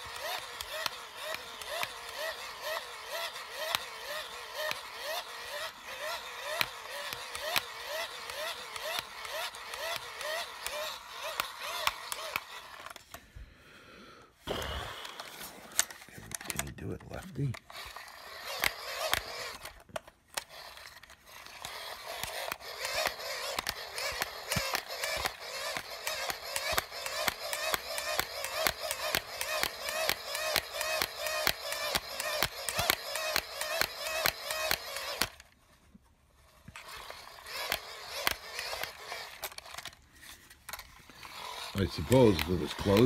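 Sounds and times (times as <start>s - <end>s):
hand-crank dynamo whirring: 0.0s - 13.3s, 14.4s - 35.8s, 36.4s - 43.0s.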